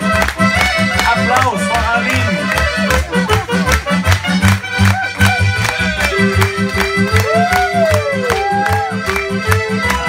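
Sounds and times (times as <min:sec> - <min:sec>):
accordion playing dance tune: 0:00.0 - 0:10.0
clarinet playing: 0:00.0 - 0:10.0.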